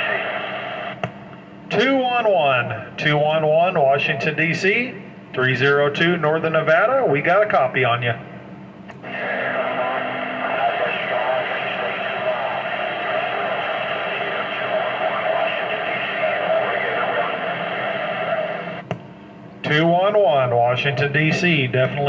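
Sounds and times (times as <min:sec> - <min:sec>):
radio static hiss: 0:00.0 - 0:01.1, 0:08.9 - 0:18.9
faint garbled radio voice: 0:09.0 - 0:18.8.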